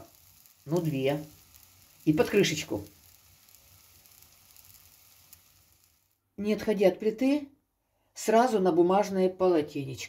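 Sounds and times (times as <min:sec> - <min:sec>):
fritters sizzling in a pan: 0:00.0 - 0:06.2
small crackle: 0:00.0 - 0:06.2.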